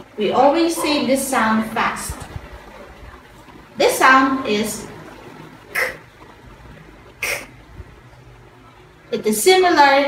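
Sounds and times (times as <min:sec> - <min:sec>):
person making breathy kuh sounds: 0:05.7 - 0:06.0, 0:07.2 - 0:07.6.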